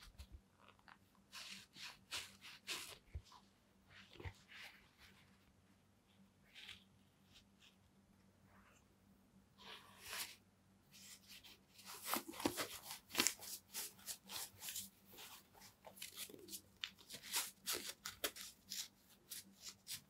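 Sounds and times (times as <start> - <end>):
glove rustling and scraping: 0.0 - 8.0, 9.6 - 20.0.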